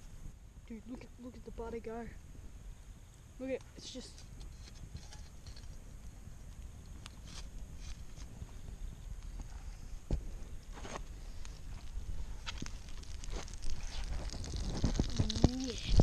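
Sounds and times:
campfire crackling: 0.0 - 16.0
fire popping: 0.0 - 16.0.

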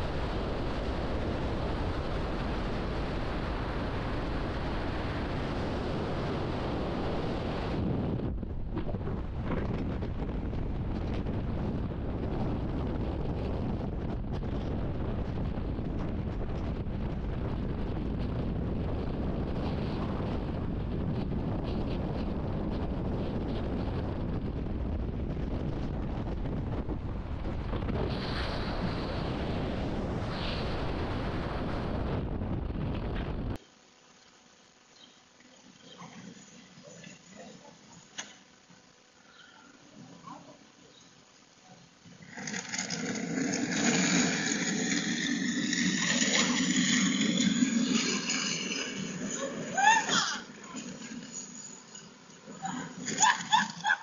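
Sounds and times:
wind rushing over microphone: 0.0 - 33.6, 42.1 - 54.0.

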